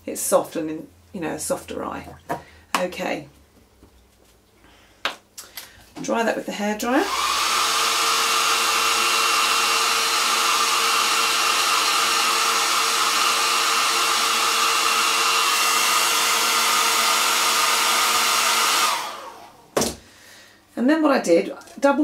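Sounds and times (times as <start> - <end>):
hair dryer running: 6.8 - 20.0.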